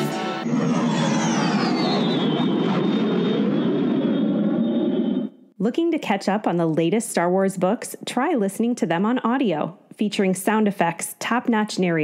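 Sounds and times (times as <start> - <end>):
jet flyby whine: 0.0 - 5.5.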